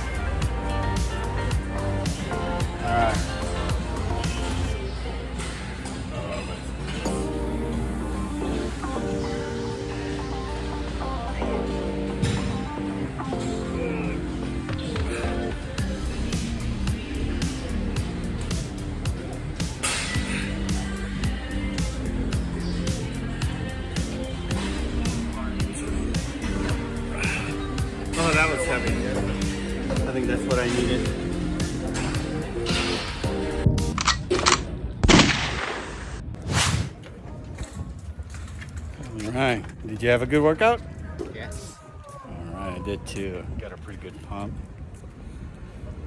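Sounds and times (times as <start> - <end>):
background music: 0.0 - 35.7.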